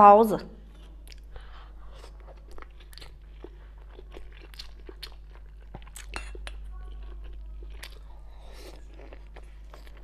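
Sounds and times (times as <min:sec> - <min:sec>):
close-miked chewing: 0:00.7 - 0:10.0.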